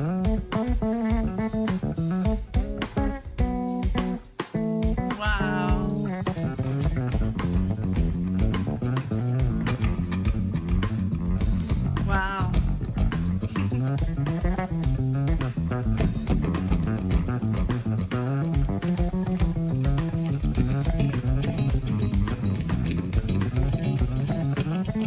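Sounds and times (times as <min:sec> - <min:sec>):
bass guitar line: 0:00.0 - 0:25.0
electric guitar: 0:00.0 - 0:25.0.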